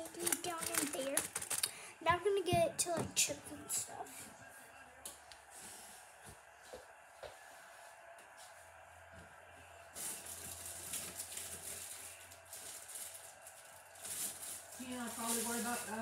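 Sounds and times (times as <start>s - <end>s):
snack packaging rustling: 0.0s - 1.8s, 10.0s - 16.0s.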